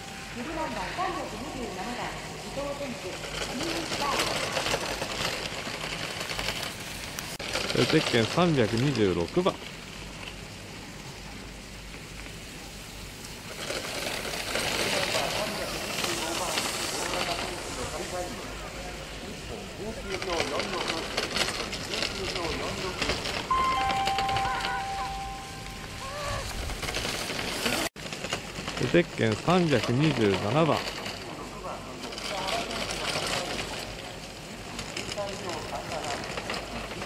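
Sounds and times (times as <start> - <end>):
ski edges scraping on snow: 12.0 - 19.4, 25.0 - 27.9
two-note tone: 23.5 - 26.4.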